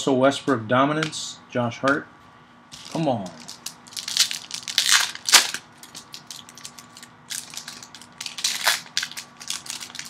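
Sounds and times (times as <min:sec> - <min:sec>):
wrapper crinkling: 0:02.8 - 0:10.0.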